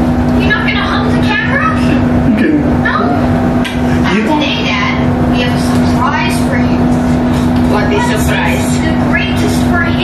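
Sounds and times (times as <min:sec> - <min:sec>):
constant low rumble: 0:00.0 - 0:10.0
steady low hum: 0:00.0 - 0:10.0
voices talking: 0:00.3 - 0:10.0.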